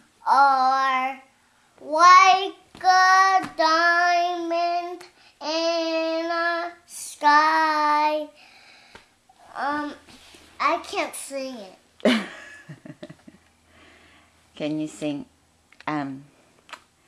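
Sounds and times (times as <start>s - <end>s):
girl singing slow tune: 0.0s - 11.6s.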